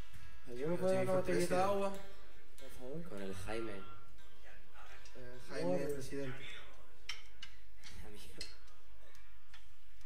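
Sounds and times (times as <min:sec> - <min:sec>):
man speaking: 0:00.5 - 0:07.0.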